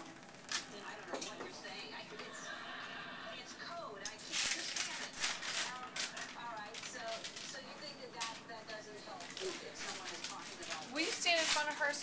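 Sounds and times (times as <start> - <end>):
quiet talking voices: 0.6 - 12.0.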